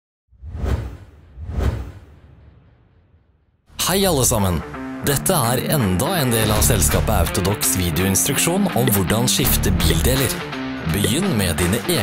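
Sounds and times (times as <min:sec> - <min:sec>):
whoosh sound effects: 0:00.4 - 0:03.2.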